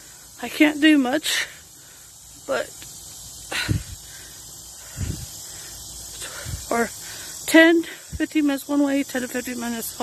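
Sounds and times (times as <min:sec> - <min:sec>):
person breathing hard: 0:00.0 - 0:00.4, 0:01.3 - 0:02.4, 0:03.4 - 0:08.2
faint steady hiss: 0:00.0 - 0:10.0.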